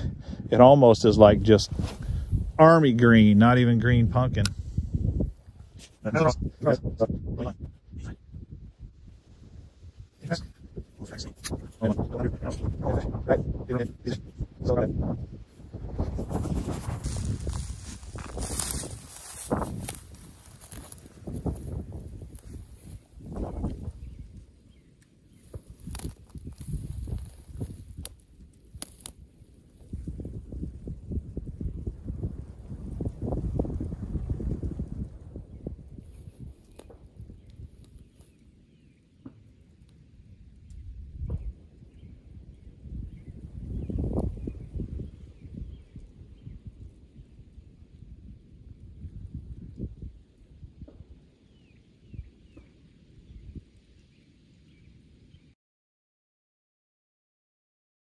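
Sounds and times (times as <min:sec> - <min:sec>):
wind buffeting microphone: 0:00.0 - 0:39.3, 0:40.0 - 0:53.9.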